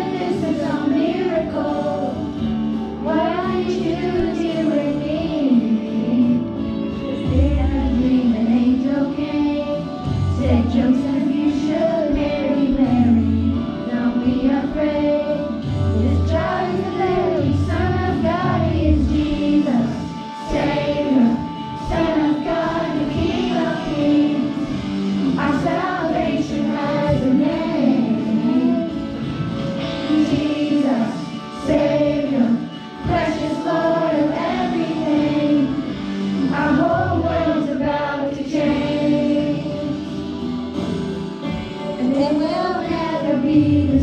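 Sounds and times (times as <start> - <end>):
children singing into microphones: 0.0 - 41.1, 41.9 - 44.0
musical accompaniment with bass line: 0.0 - 44.0.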